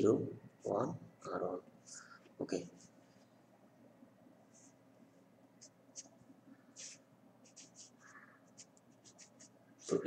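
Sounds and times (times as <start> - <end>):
marker scratching on paper: 5.6 - 10.0.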